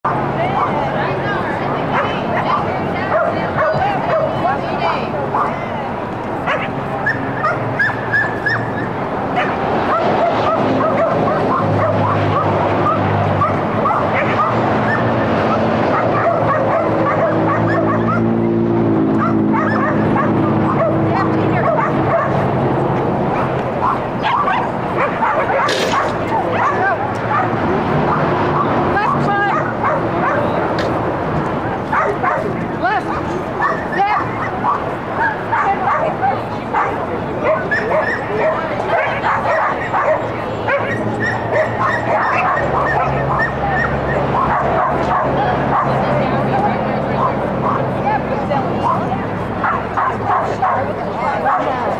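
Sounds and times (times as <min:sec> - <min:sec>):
dogs barking: 0:00.1 - 0:01.1, 0:01.8 - 0:05.7, 0:06.4 - 0:51.9
people talking: 0:00.1 - 0:51.9.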